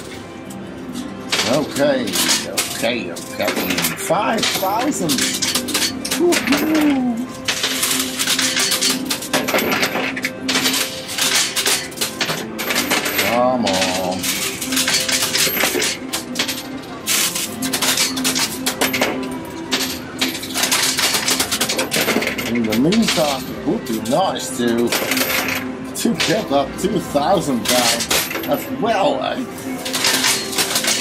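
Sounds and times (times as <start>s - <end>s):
coins clinking on metal: 0.0s - 31.0s.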